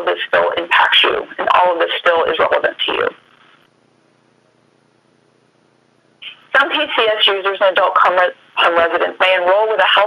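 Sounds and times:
faint recording hiss: 0.0s - 10.0s.

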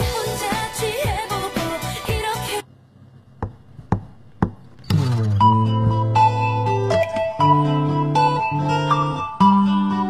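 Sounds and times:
backing track music: 0.0s - 2.6s, 5.0s - 10.0s.

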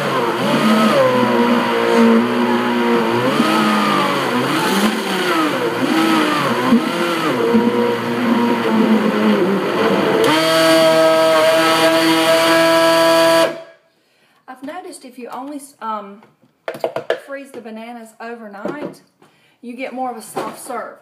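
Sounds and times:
blender motor running: 0.0s - 13.6s.

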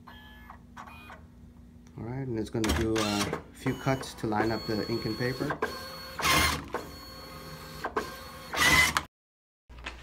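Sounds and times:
printer motor hum: 2.7s - 9.0s.

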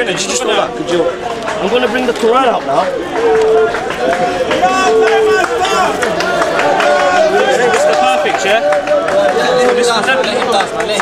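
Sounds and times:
men talking in a crowd: 0.0s - 11.0s.

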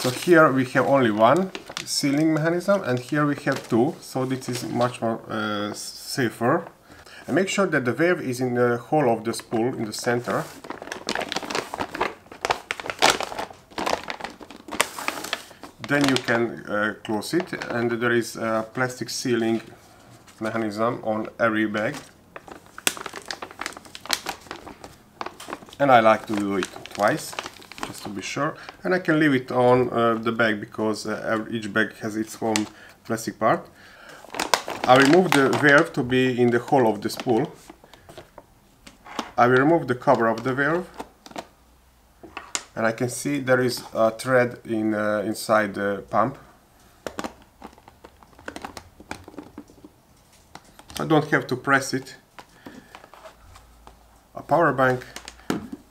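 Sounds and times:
plastic bag crinkling: 0.0s - 5.0s, 9.3s - 30.4s, 34.0s - 41.6s, 42.2s - 44.2s, 47.0s - 55.9s.

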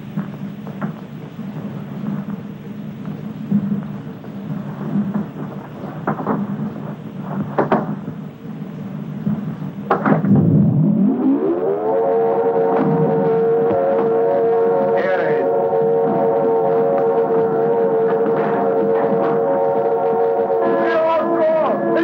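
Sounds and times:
low rumble: 0.0s - 20.6s
sharp knocks: 7.4s - 8.0s, 9.9s - 10.4s
motor-driven alarm siren: 10.2s - 22.0s.

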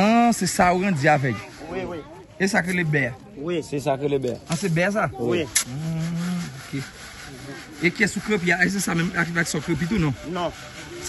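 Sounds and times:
sand sifting through wire mesh: 0.0s - 3.1s, 4.4s - 11.0s
screen scraping rub: 4.5s - 11.0s.

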